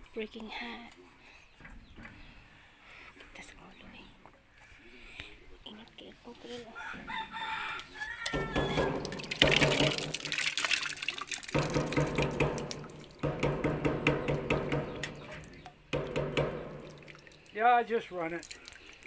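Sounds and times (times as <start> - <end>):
rooster crowing: 6.8 - 9.0
water pump humming: 8.2 - 19.0.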